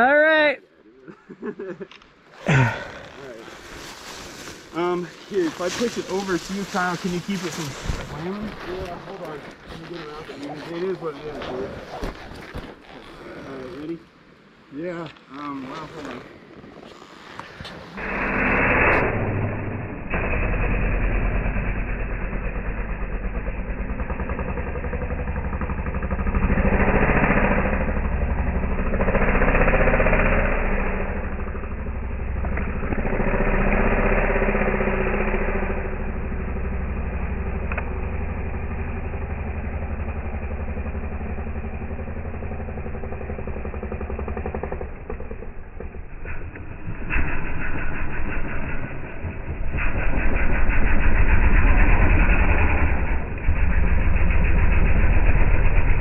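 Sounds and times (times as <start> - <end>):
dirt bike engines revving: 1.2 - 14.2, 15.2 - 56.0.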